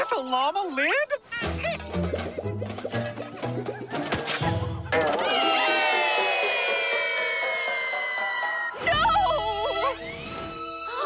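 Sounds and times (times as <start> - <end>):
orchestral music: 1.4 - 10.7.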